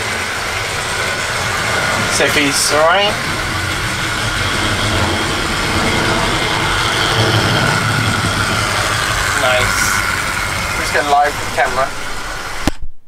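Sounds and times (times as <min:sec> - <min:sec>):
electric motor whine: 0:00.0 - 0:12.7
model train wheels rumbling: 0:00.0 - 0:12.7.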